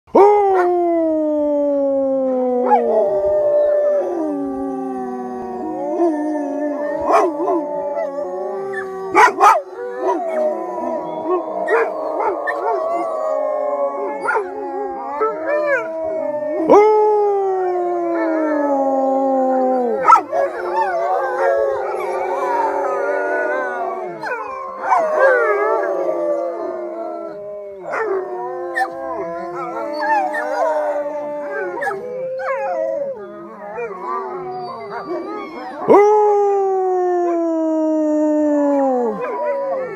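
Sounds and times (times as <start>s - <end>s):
wolves howling in chorus: 0.1s - 39.9s.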